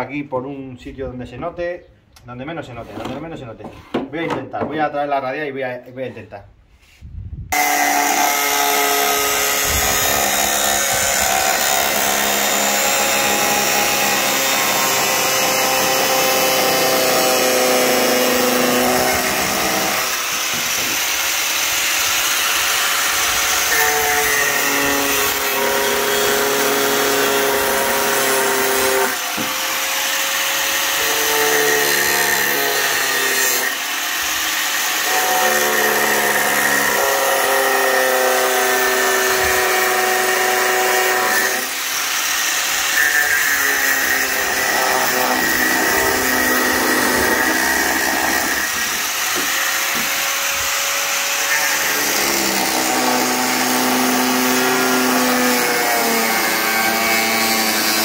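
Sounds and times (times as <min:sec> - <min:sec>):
angle grinder cutting plastic: 0:07.5 - 0:58.0.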